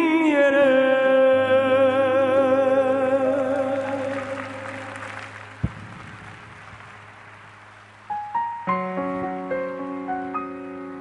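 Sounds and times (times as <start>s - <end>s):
applause: 3.7s - 7.5s.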